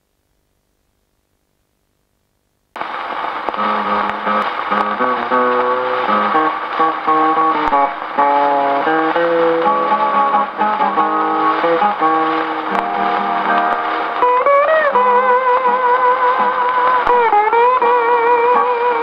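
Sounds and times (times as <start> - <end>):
record surface hiss: 0.0 - 19.0
plucked guitar accompaniment: 2.8 - 19.0
steel guitar gliding notes: 3.4 - 19.0.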